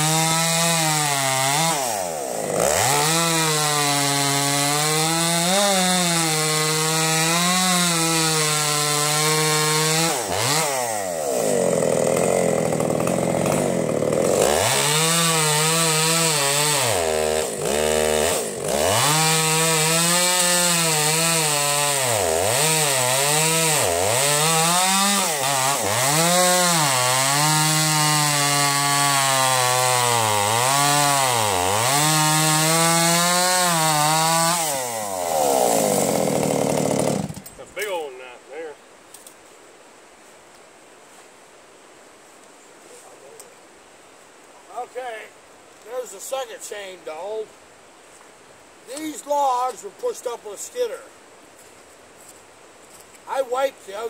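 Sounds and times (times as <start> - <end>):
chainsaw cutting logs: 0.0 - 38.2, 48.9 - 51.0.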